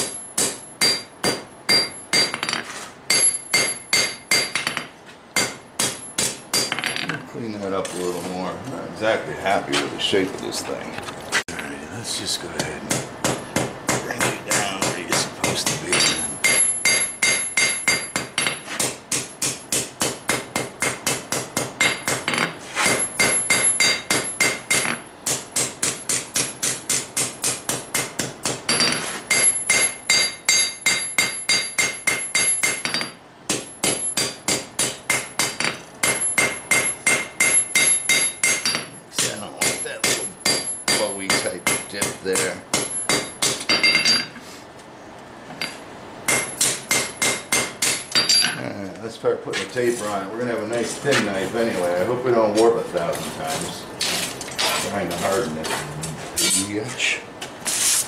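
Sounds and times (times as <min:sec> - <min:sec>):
hammer striking metal on anvil: 0:00.0 - 0:07.1, 0:12.9 - 0:44.3, 0:45.6 - 0:48.6.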